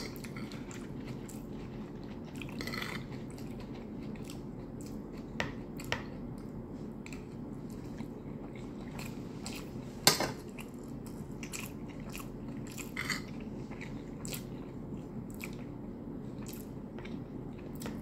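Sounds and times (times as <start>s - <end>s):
person chewing food: 0.0s - 18.0s
steady low hum: 0.0s - 18.0s.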